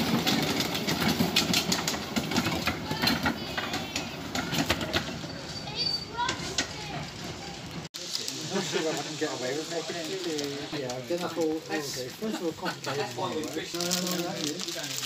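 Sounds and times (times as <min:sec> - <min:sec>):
wheels clicking on track: 0:00.0 - 0:15.0
people talking: 0:02.8 - 0:15.0.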